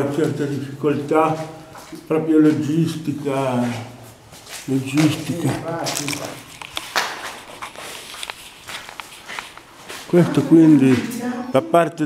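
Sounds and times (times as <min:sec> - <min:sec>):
footsteps on hard floor: 0:00.1 - 0:11.5.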